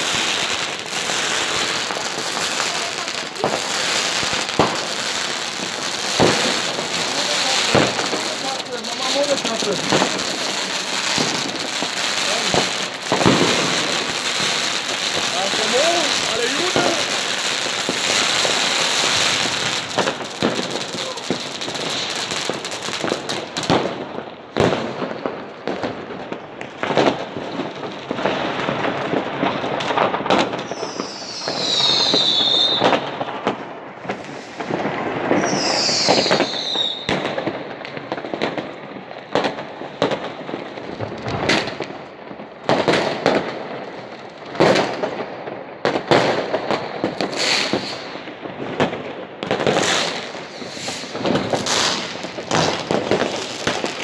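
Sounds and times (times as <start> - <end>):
fireworks crackling and banging: 0.0 - 54.0
firework whistle falling: 30.6 - 33.1, 34.1 - 37.2, 47.2 - 48.2, 49.8 - 52.7.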